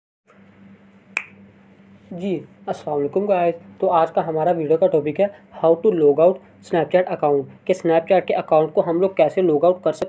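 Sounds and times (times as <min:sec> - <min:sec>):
faint steady hum: 0:00.3 - 0:10.0.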